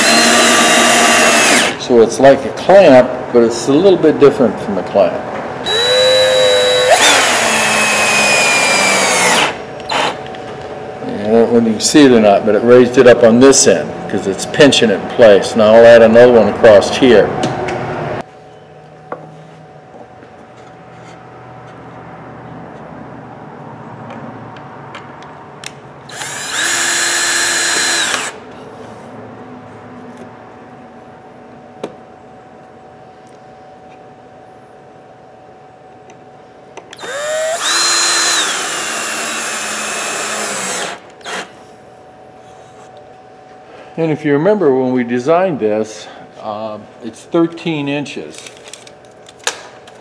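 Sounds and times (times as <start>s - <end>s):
cordless drill driving screws: 0.0s - 1.8s, 5.7s - 10.2s, 26.1s - 28.4s, 37.0s - 41.5s.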